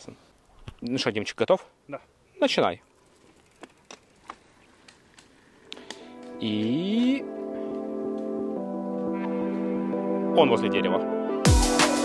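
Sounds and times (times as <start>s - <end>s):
faint sharp clicks: 3.6s - 6.4s
soft music: 5.6s - 12.0s.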